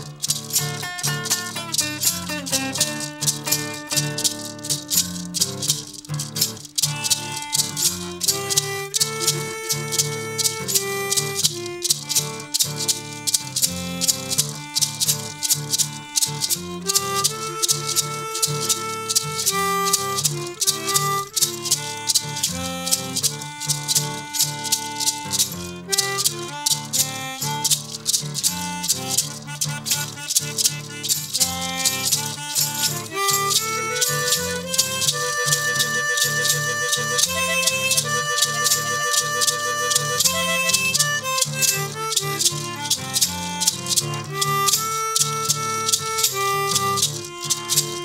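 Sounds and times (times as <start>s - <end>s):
acoustic guitars playing blues: 0.0s - 48.0s
harmonica: 0.0s - 48.0s
shaker beat: 0.0s - 48.0s.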